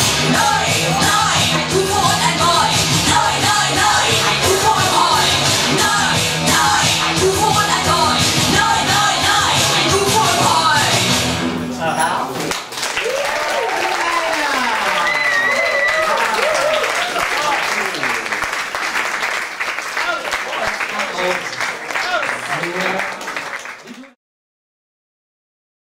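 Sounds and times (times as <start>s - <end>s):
playback music: 0.0s - 12.3s
audience applauding: 12.5s - 24.2s
cheering and shouting voices: 13.0s - 18.1s.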